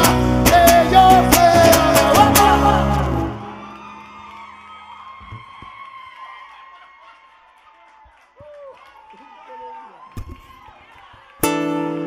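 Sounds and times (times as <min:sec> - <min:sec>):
audience whooping: 0:00.8 - 0:12.0.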